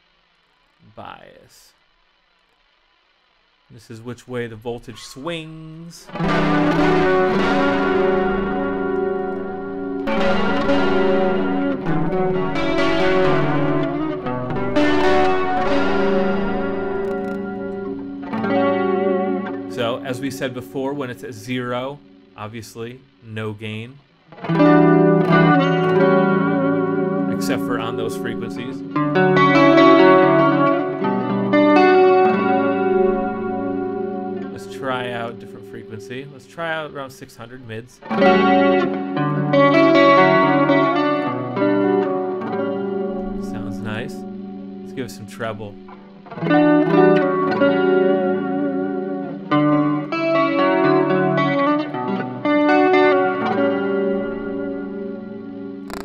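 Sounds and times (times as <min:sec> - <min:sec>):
distorted electric guitar chords: 0:00.0 - 0:56.0.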